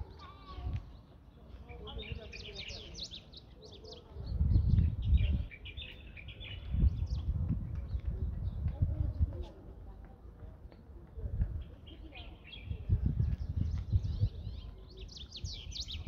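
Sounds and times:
small birds chirping: 0.0s - 16.0s
wind gusts on microphone: 4.0s - 9.9s, 11.2s - 16.0s.

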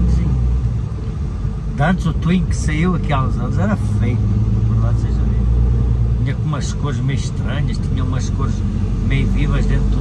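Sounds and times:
truck engine and tyres droning: 0.0s - 10.0s.

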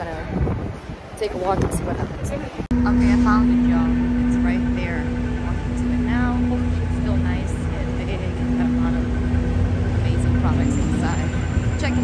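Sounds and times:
low rumble of vehicles: 0.0s - 12.0s
constant low hum: 2.6s - 12.0s.

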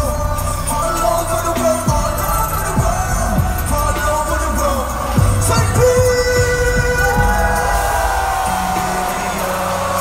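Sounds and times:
bass line: 0.0s - 10.0s.

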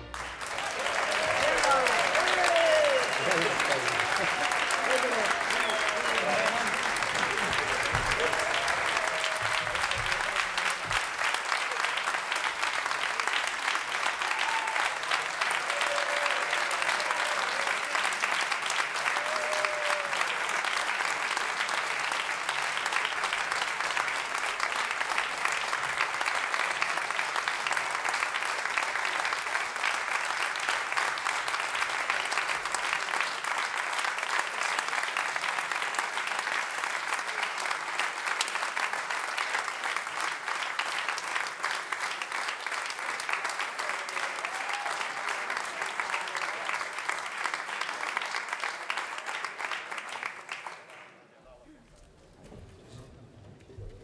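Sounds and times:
audience applauding: 0.0s - 51.3s.

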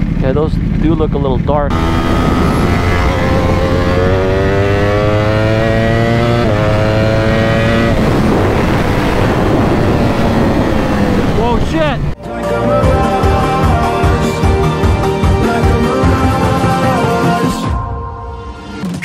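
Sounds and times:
motorcycle engine accelerating: 0.0s - 12.2s
wind rush: 1.7s - 12.2s.

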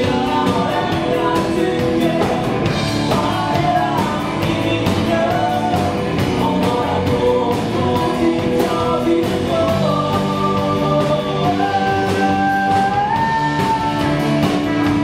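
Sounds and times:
male vocal singing: 0.0s - 14.2s
bass guitar: 0.0s - 15.0s
drum kit beat: 0.0s - 15.0s
electric guitar: 0.0s - 15.0s.

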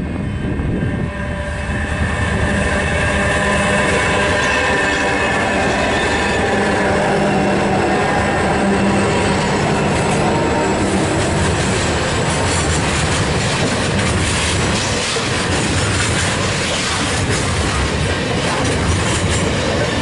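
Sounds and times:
diesel locomotive engines: 0.0s - 20.0s
wagons rumbling on rails: 0.0s - 20.0s.

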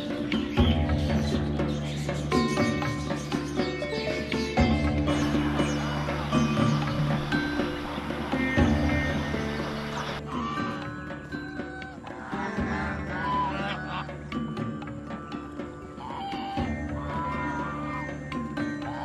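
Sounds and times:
background music with drone: 0.0s - 19.0s
ducks quacking: 5.1s - 10.9s, 11.9s - 14.2s.

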